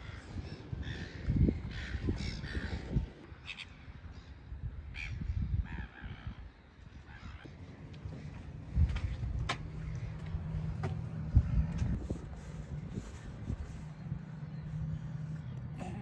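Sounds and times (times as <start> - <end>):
low rumbling noise: 7.1 - 16.0.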